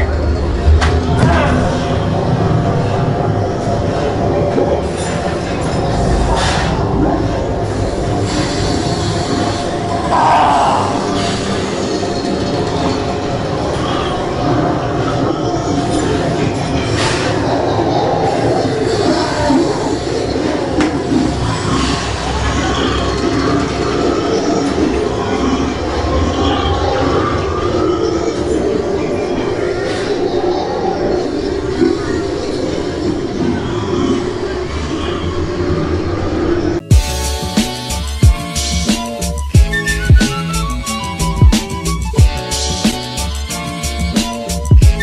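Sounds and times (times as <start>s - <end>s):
dense noisy layer: 0.0s - 45.0s.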